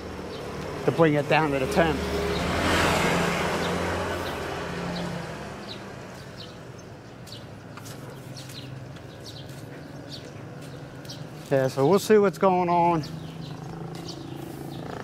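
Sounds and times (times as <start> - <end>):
motor scooter passing: 0.0 - 6.8, 13.0 - 15.0.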